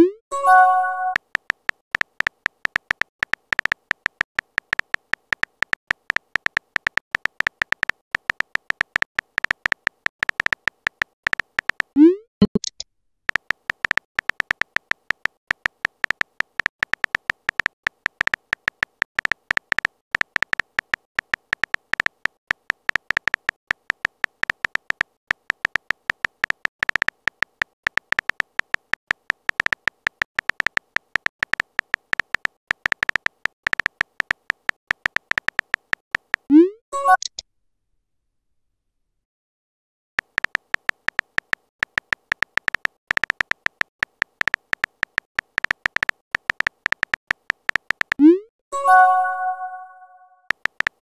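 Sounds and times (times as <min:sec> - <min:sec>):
short high keyboard beeps: 0:00.0 - 0:01.2, 0:36.5 - 0:37.4, 0:48.2 - 0:50.4.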